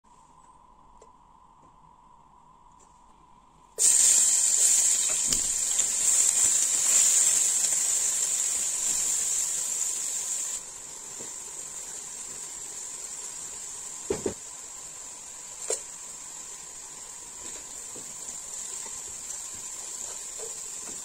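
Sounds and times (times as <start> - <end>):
onion sizzling in hot oil: 3.8 - 21.0.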